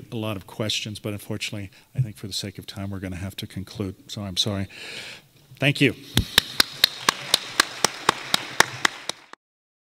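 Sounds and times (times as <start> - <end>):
close hand clapping: 6.2 - 9.4
faint applause: 6.4 - 9.4.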